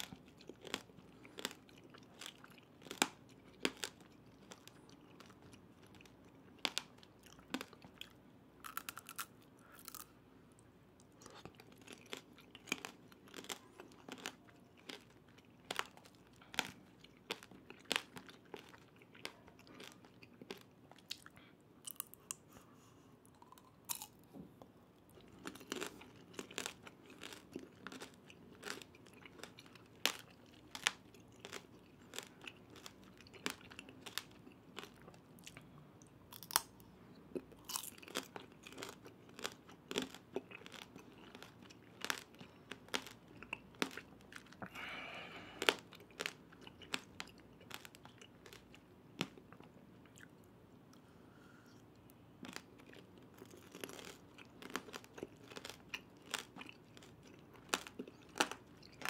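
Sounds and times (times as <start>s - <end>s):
crunchy chewing of hard candy: 0.0s - 59.0s.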